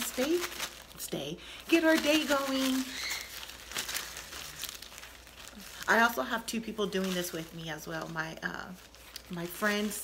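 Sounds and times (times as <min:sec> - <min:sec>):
bag crinkling and rustling: 0:00.0 - 0:10.0.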